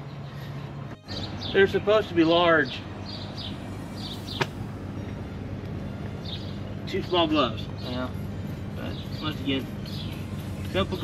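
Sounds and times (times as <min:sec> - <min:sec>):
low mechanical hum: 0:02.4 - 0:11.0.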